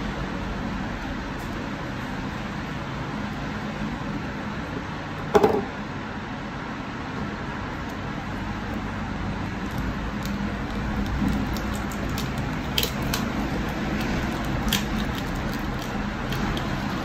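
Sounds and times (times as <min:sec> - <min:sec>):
object knocking on wooden table: 0:05.3 - 0:05.7.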